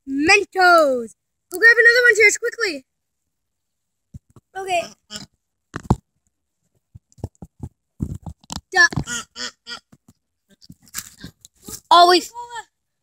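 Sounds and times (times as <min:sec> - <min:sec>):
camera handling knocks and crunches: 0:05.7 - 0:06.1, 0:06.9 - 0:09.1.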